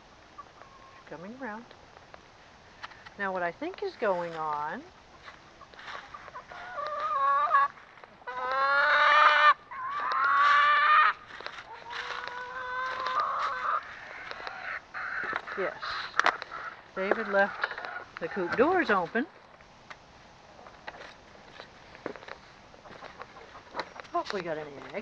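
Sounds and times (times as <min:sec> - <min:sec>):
chickens calling: 0:00.0 - 0:25.0.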